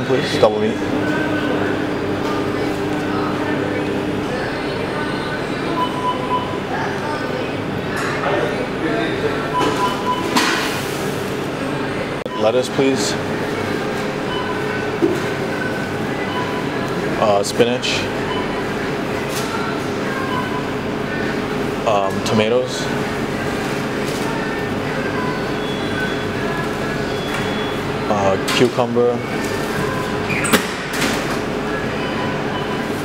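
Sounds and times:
room noise hum: 0.0s - 33.0s.

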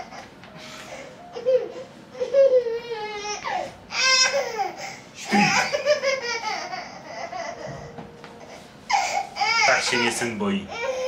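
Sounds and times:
baby laughing: 1.3s - 7.7s.

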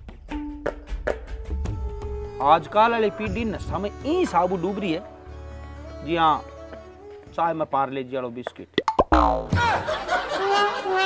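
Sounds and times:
boing-like pitch sweeps: 8.8s - 9.8s.

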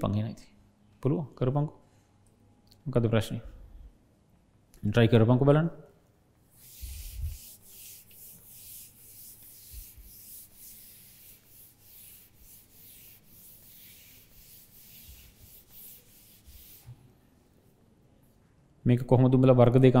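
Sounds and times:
cloth rubbing chalkboard: 6.5s - 17.1s.

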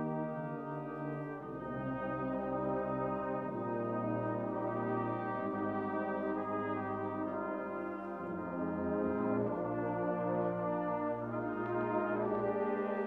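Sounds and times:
brass band playing slow chords: 0.0s - 13.0s.

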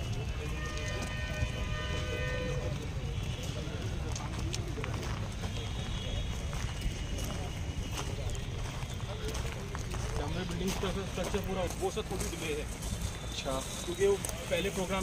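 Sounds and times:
faint voices: 0.0s - 15.0s
footsteps on dirt: 0.0s - 15.0s.

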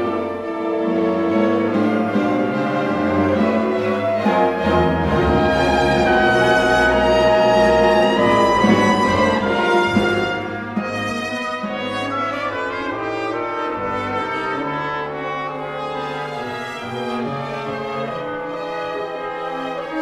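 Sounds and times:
symphony orchestra with brass: 0.0s - 20.0s.

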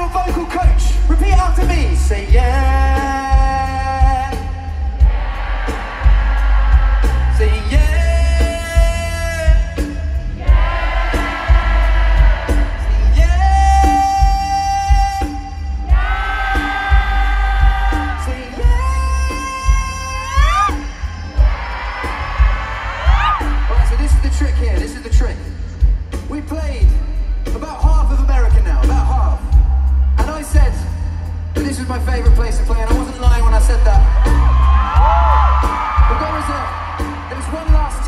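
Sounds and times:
live pop ballad over loudspeakers: 0.0s - 38.0s
crowd whooping: 4.8s - 8.1s, 15.7s - 24.8s, 33.7s - 38.0s.

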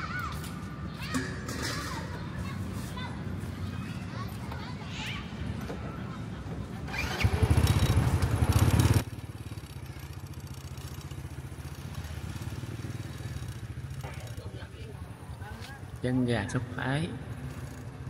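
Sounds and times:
motorbike engines running: 0.0s - 18.0s
steady engine hum: 5.8s - 18.0s.

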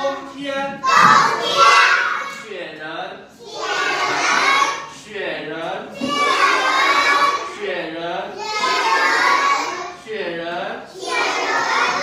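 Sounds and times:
children shouting in unison: 0.8s - 2.4s, 3.4s - 5.0s, 6.0s - 7.6s, 8.4s - 10.0s, 11.0s - 12.0s.

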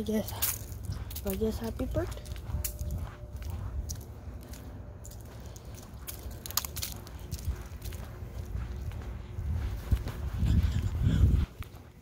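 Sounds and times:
footsteps on leafy concrete: 0.0s - 12.0s
steady low rumble: 0.0s - 12.0s.

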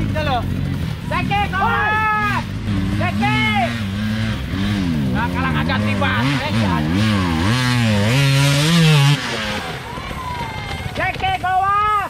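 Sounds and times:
dirt bike engine revving: 0.0s - 11.5s
person shouting: 1.3s - 2.4s.

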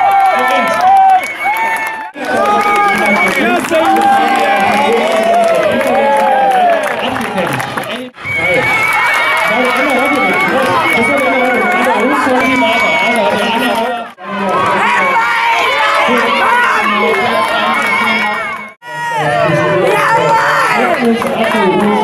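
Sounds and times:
crowd chattering and cheering: 0.0s - 22.0s.

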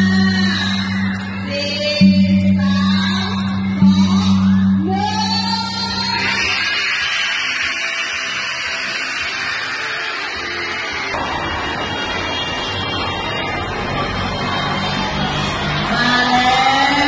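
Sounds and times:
music playing: 0.0s - 17.0s.

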